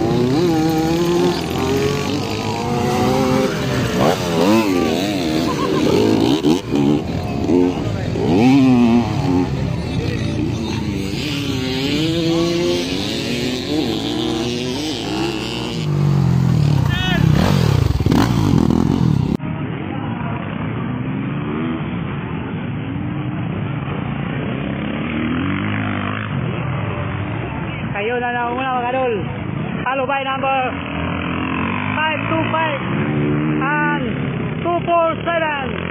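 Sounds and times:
voices: 0:00.0 - 0:18.3
dirt bike engines revving: 0:00.0 - 0:35.9.

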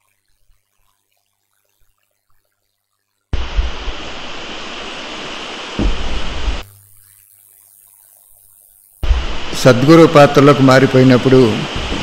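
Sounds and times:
static-like hiss: 0:00.0 - 0:12.0.

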